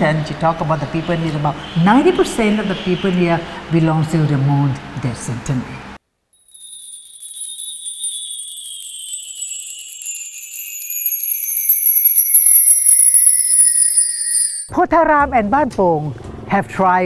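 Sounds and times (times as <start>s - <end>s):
tinkling jingle-bell effect: 6.4s - 14.7s.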